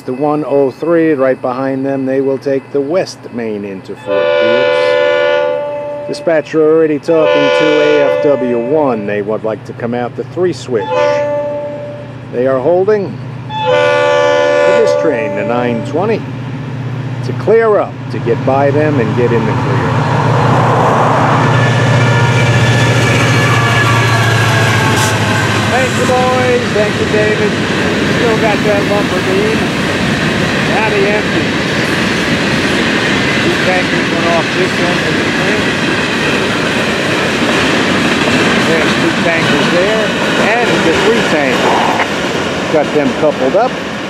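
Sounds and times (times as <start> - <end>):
diesel locomotive engine drone: 0.0 - 44.0
freight train wheels rumbling on rail: 0.0 - 44.0.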